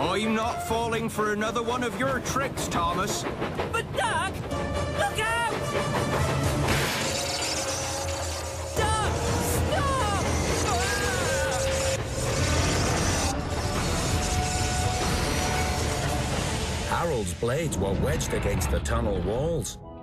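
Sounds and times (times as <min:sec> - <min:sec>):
rising-and-falling cries: 0:07.0 - 0:16.8.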